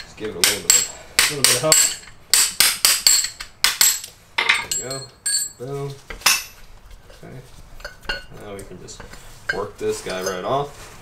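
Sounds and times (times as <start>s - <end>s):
metallic clinks on concrete: 3.0s - 6.6s.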